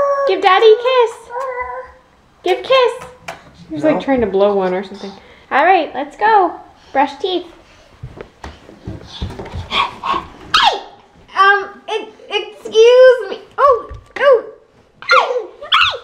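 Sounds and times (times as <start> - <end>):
toddler squealing: 10.5 - 10.9.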